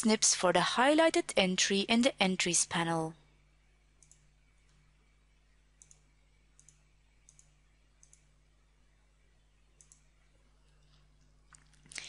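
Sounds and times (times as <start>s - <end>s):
computer mouse clicks: 4.0s - 4.8s, 5.8s - 8.3s, 9.8s - 10.1s.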